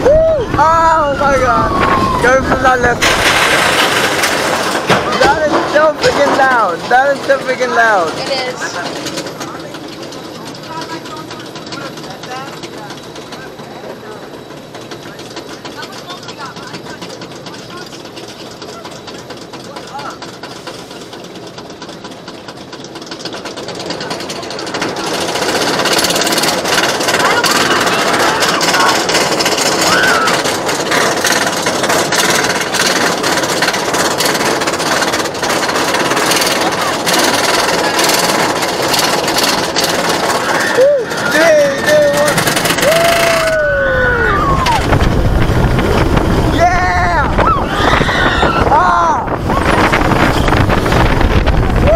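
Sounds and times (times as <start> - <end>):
roller coaster chain lift clatter: 0.0 - 51.9.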